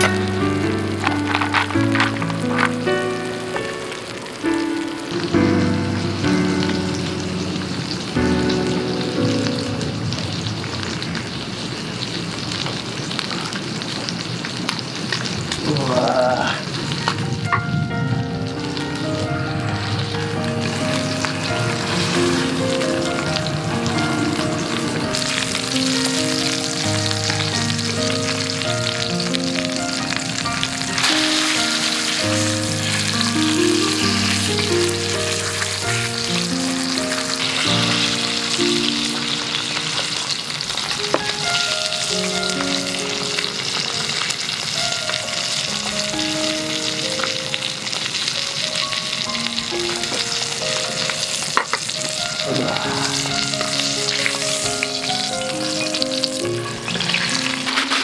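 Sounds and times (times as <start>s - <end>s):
slow melodic background music: 0.0s - 11.2s, 16.0s - 58.0s
steak sizzling in a skillet: 0.0s - 58.0s.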